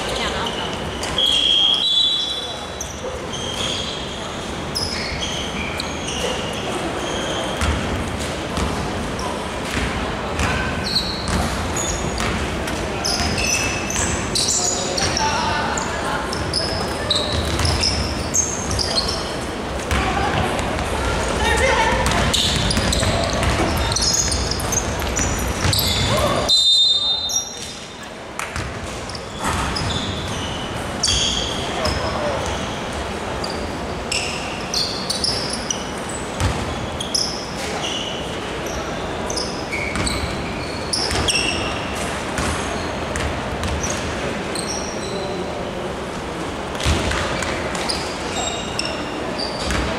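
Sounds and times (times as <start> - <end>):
sneakers squeaking: 0.0 - 45.5, 46.7 - 49.9
referee's whistle: 1.0 - 2.6, 25.7 - 27.5
basketball dribbling: 21.9 - 26.2.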